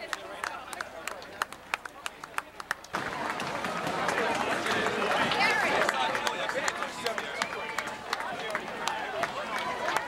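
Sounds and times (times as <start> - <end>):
crowd voices chattering: 0.0 - 10.0
runners' footsteps on pavement: 0.0 - 10.0.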